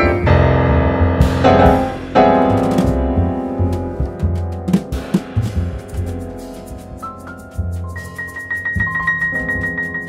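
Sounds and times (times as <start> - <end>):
jazz piano trio: 0.0 - 10.0.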